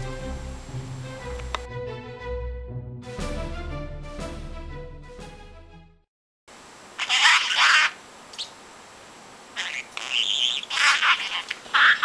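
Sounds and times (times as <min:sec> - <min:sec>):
budgerigar warbling: 0:07.0 - 0:08.6, 0:09.5 - 0:12.0.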